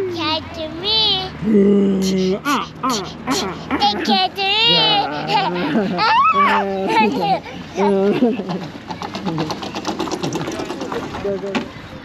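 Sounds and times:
roller slide rollers clattering: 0:09.0 - 0:11.7.

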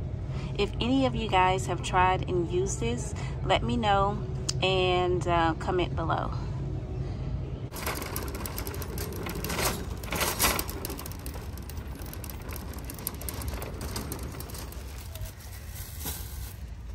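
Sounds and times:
shopping cart rattling over asphalt: 0:07.7 - 0:16.9.

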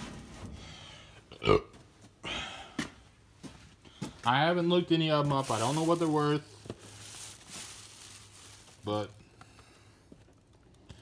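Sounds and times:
man burping: 0:01.3 - 0:02.8.

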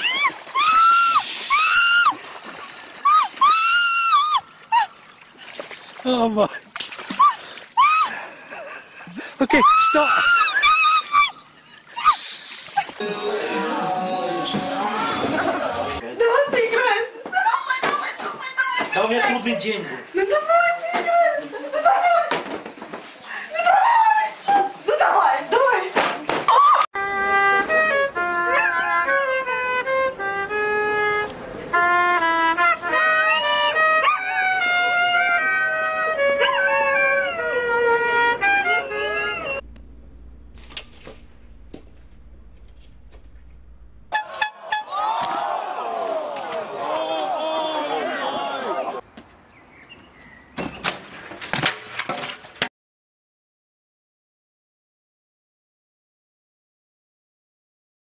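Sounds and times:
tune of clear held notes: 0:13.0 - 0:16.0
wavering voice-like sound: 0:13.0 - 0:16.0
excited voices: 0:13.0 - 0:16.1, 0:44.2 - 0:49.0
laughter: 0:21.4 - 0:22.2
low hum: 0:39.5 - 0:44.2.

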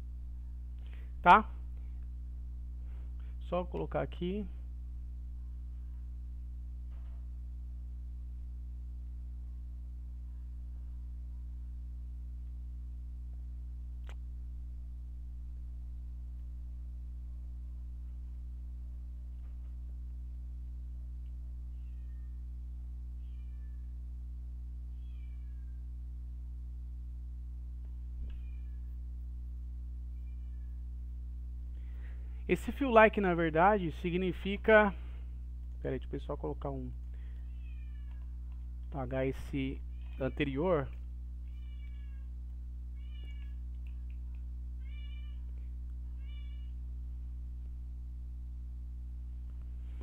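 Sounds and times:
steady low hum: 0:00.0 - 0:50.0
click: 0:14.0 - 0:14.3, 0:21.2 - 0:21.4, 0:38.0 - 0:39.0, 0:43.4 - 0:44.5
faint animal calls: 0:24.9 - 0:25.9, 0:43.0 - 0:46.8.

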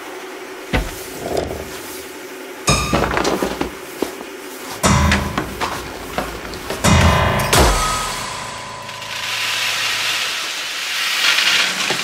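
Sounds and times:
chamber music for pianos and percussion: 0:02.7 - 0:03.8, 0:04.8 - 0:10.4
sharp struck attacks: 0:04.8 - 0:10.4.

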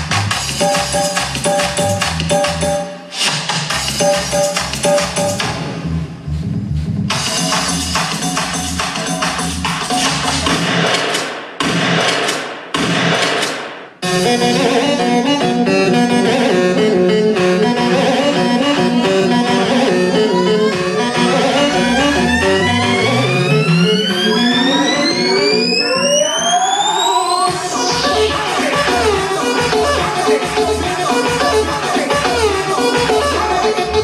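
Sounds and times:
dance music bass beat: 0:00.0 - 0:13.6, 0:20.3 - 0:34.0
rising synth riser: 0:20.6 - 0:29.7
loud rushing noise bursts: 0:26.9 - 0:30.7.

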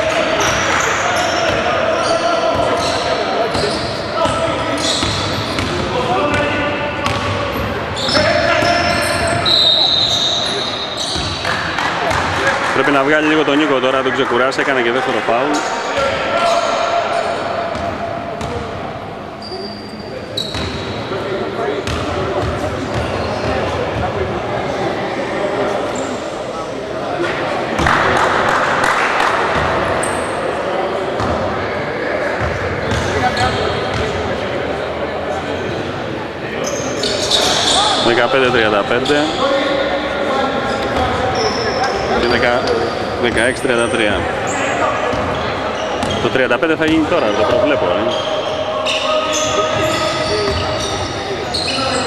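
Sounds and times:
players and spectators calling out: 0:00.0 - 0:52.0.

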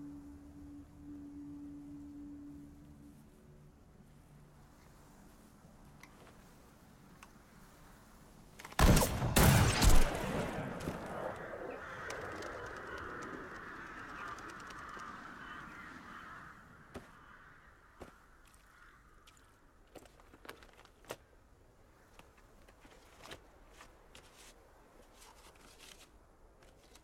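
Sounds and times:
rifle shot echoing: 0:08.8 - 0:11.7
flock of birds calling: 0:10.9 - 0:19.0.

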